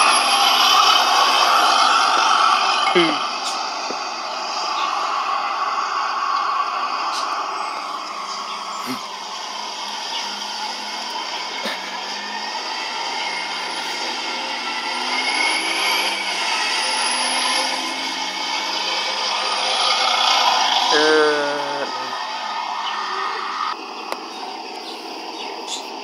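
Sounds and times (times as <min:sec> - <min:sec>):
bus passing and pulling away: 0:00.0 - 0:26.0
traffic noise: 0:00.0 - 0:26.0.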